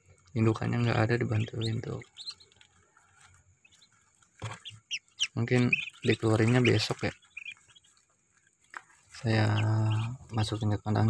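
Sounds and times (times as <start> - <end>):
ducklings peeping: 0.0 - 11.0.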